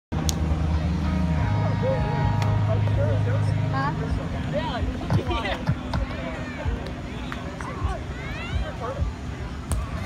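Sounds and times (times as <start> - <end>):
low engine hum: 0.1 - 10.0
faint voices: 0.2 - 10.0.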